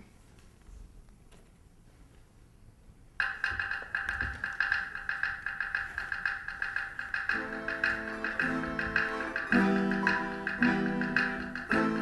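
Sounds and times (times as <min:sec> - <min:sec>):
domras playing rapid tremolo: 0:03.2 - 0:12.0
lower plucked strings: 0:07.3 - 0:12.0.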